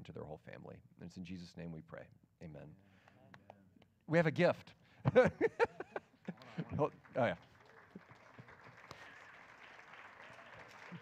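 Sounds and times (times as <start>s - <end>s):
faint audience applause: 6.2s - 11.0s.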